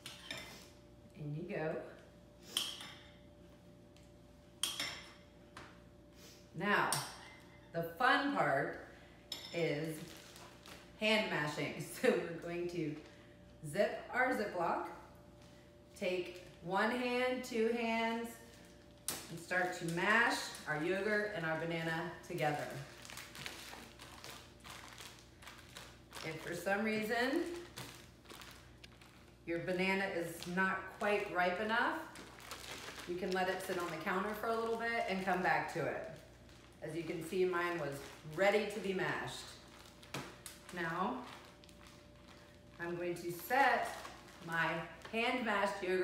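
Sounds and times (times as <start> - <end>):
plastic bag crinkling and squishing: 9.8 - 11.5, 18.3 - 46.0.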